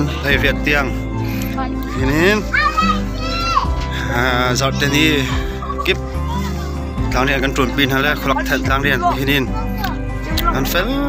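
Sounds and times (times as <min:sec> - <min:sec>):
background music: 0:00.0 - 0:11.0
children calling and shouting: 0:00.0 - 0:11.0.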